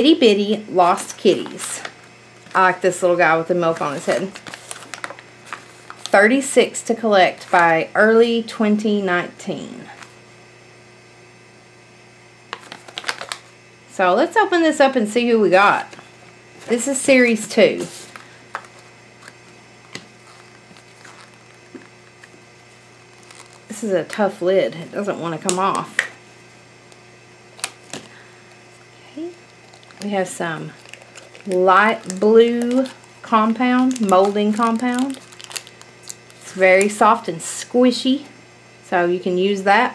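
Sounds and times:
steady hum: 0:00.0 - 0:39.9
toy packaging rustling and clicking: 0:12.6 - 0:13.4, 0:18.0 - 0:22.4, 0:23.0 - 0:23.7, 0:29.5 - 0:33.1, 0:33.8 - 0:37.0.

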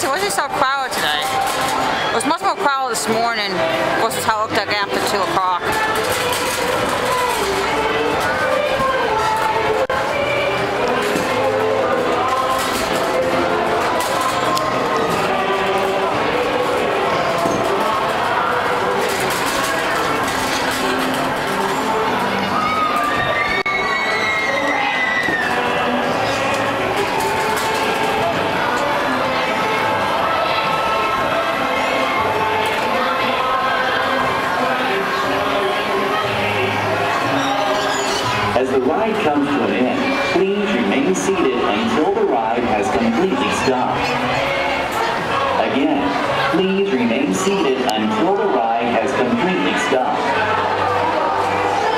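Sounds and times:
carousel music: 0:00.0 - 0:51.9
crowd chatter and shouts: 0:00.0 - 0:51.9.

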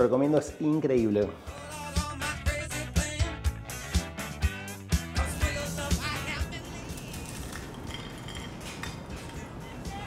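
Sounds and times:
cheese crisp crackling: 0:06.8 - 0:07.9.

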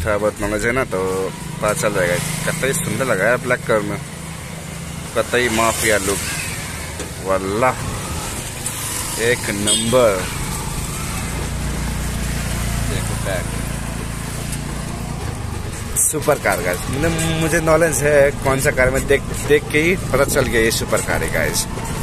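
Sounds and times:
small motorcycle engine running: 0:00.4 - 0:22.0.

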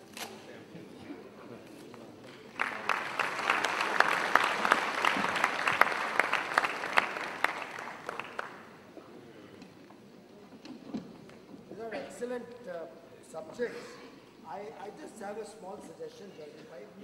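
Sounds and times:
audience applauding: 0:02.5 - 0:08.8.

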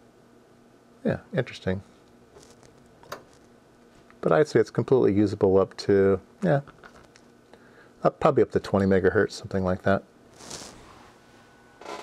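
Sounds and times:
soft hiss: 0:09.4 - 0:11.8.

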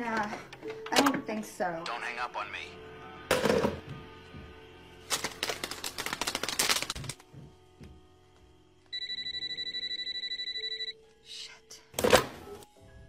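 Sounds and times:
telephone trilling ring: 0:09.0 - 0:11.0.

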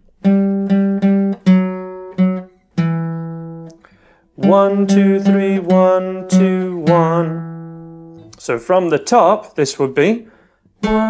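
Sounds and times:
acoustic guitar slow riff: 0:00.0 - 0:08.4, 0:10.3 - 0:11.0.

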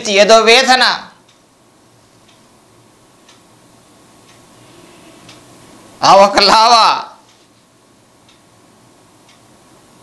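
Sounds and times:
thin steady hum: 0:00.0 - 0:10.0
clock ticking: 0:04.2 - 0:04.5.

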